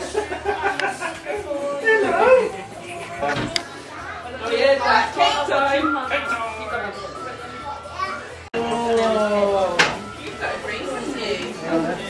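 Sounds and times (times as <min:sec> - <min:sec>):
children and adults talking: 0:00.1 - 0:12.0.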